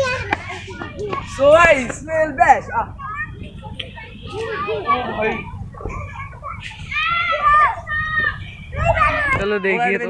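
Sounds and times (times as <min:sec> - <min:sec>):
steady low rumble: 0:00.0 - 0:09.4
unclear voices talking: 0:00.0 - 0:10.0.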